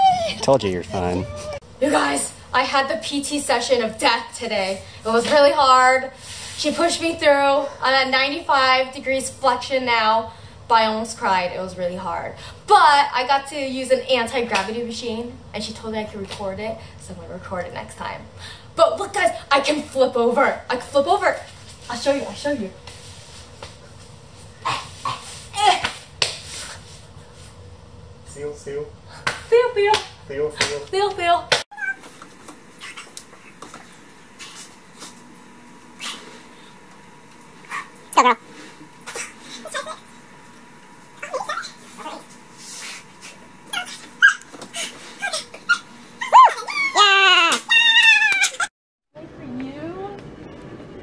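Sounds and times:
high-pitched whimpering cries: 0:00.0 - 0:01.6, 0:43.7 - 0:48.7.

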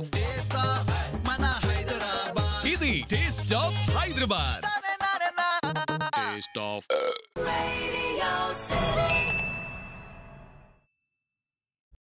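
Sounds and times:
bell-like ding: 0:09.1 - 0:11.2.

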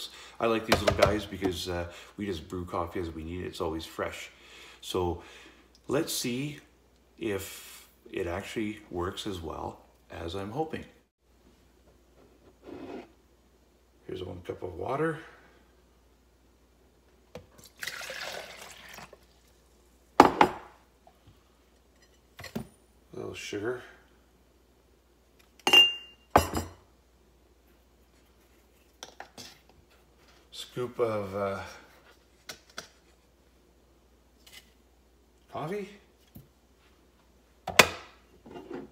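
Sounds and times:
ceramic mug scraping countertop: 0:12.4 - 0:13.1, 0:38.4 - 0:38.9.

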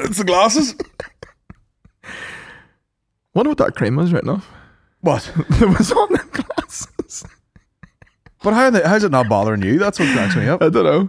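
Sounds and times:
man's breathy laughter: 0:00.7 - 0:02.6, 0:05.8 - 0:08.5.

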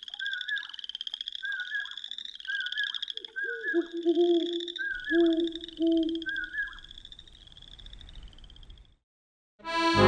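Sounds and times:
frog trilling: 0:00.1 - 0:08.0.

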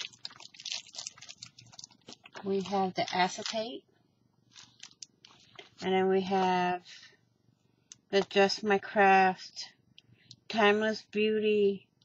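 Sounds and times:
plastic packaging crinkling: 0:00.0 - 0:03.8, 0:04.4 - 0:05.9.

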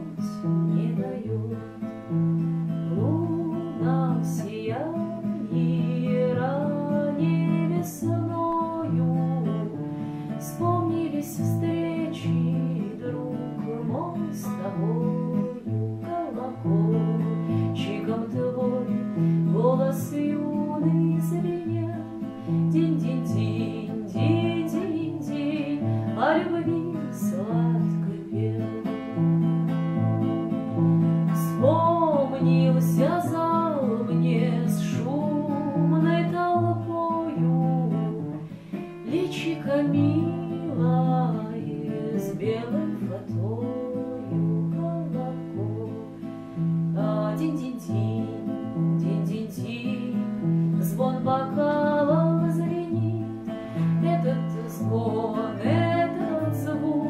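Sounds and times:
acoustic guitar strumming: 0:00.0 - 0:57.0
woman singing: 0:00.0 - 0:57.0.

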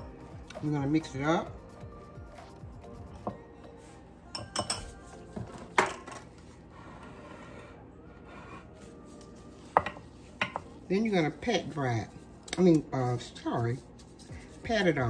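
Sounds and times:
whisk stirring in a bowl: 0:00.1 - 0:03.2, 0:09.1 - 0:15.0
metal clinking on a bowl: 0:04.3 - 0:05.0.

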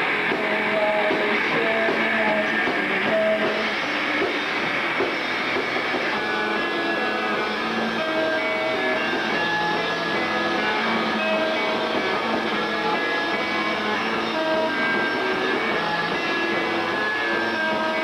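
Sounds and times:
live noise-pop band playing: 0:00.0 - 0:18.0.

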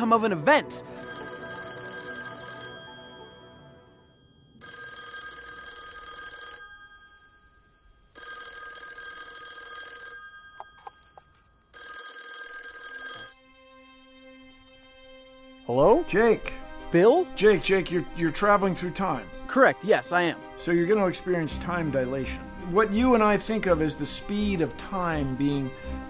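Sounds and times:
landline telephone ringing: 0:00.8 - 0:13.4.

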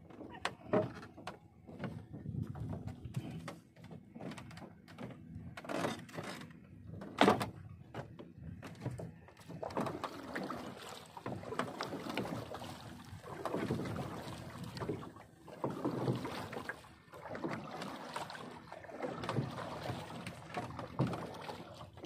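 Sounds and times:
water sloshing against boat hull: 0:00.0 - 0:22.0.

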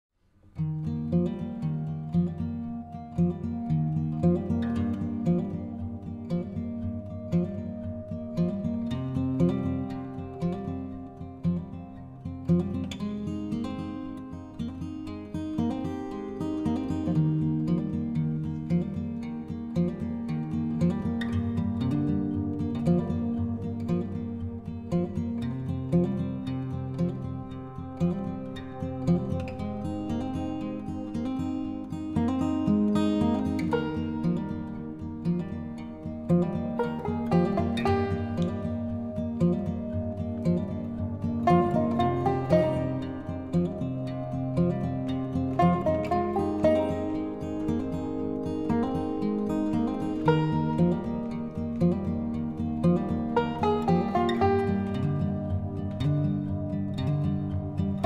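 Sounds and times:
acoustic guitar music: 0:00.2 - 0:58.0.

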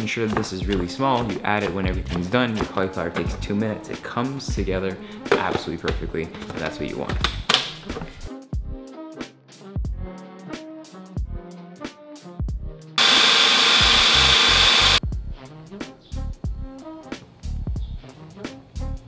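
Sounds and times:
background music with beat: 0:00.0 - 0:19.0
blender chopping: 0:13.0 - 0:15.0.

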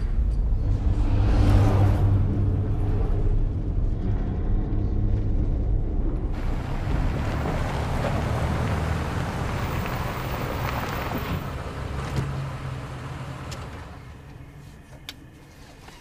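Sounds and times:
low rumble: 0:00.0 - 0:14.6.

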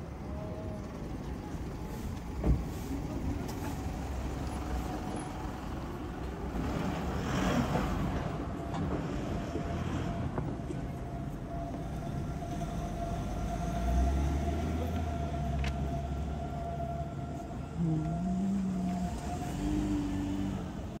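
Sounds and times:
taxi engine rumble: 0:00.0 - 0:21.0.

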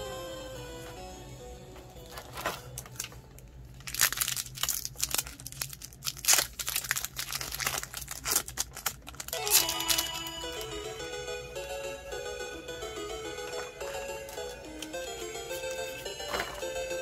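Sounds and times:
background music: 0:00.0 - 0:02.8, 0:09.3 - 0:17.0
foil wrapper crinkling and tearing: 0:02.1 - 0:10.3.

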